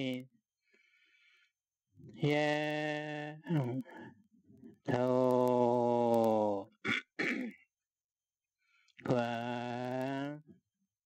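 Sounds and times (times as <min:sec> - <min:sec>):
man clearing his throat: 0:06.9 - 0:07.6.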